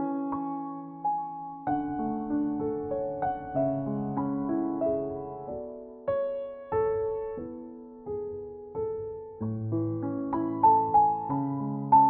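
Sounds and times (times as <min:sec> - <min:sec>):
slow gentle piano music: 0:00.0 - 0:12.0.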